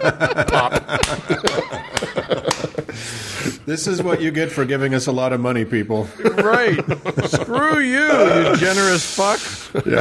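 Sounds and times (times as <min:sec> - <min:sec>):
men laughing: 0:00.0 - 0:04.5, 0:06.1 - 0:10.0.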